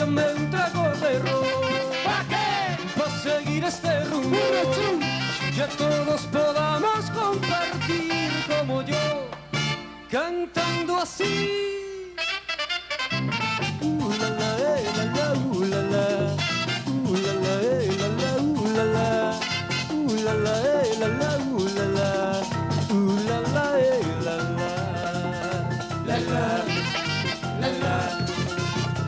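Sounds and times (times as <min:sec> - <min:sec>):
live merengue band playing: 0:00.0 - 0:29.0.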